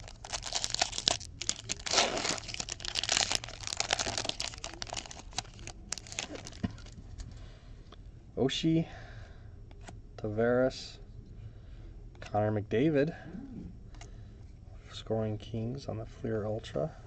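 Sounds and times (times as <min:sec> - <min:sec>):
foil wrapper tearing and crinkling: 0:00.0 - 0:07.0.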